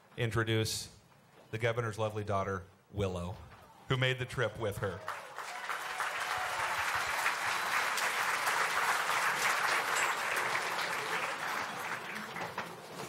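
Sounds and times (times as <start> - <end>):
audience applauding: 4.9 - 13.0.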